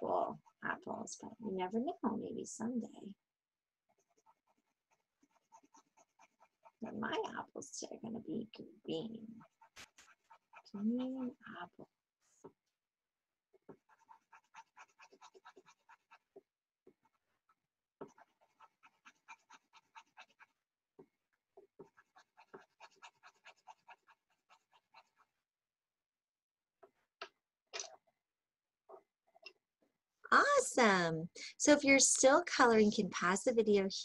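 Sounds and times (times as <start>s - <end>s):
pencil scratching on paper: 3.9s - 12.6s, 13.5s - 25.5s.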